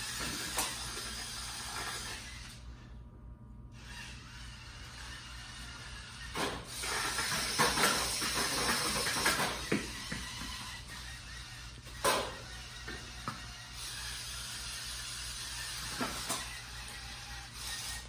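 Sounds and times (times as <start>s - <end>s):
robot motors whirring: 0.0s - 2.8s, 3.8s - 18.0s.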